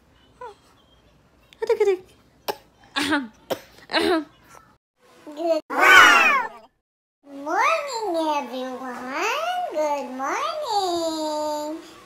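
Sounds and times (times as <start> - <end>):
baby squealing: 5.7 - 6.6.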